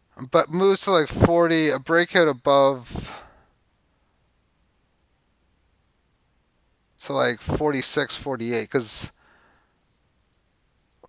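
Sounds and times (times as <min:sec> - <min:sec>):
faint computer mouse clicks: 0:09.4 - 0:11.0.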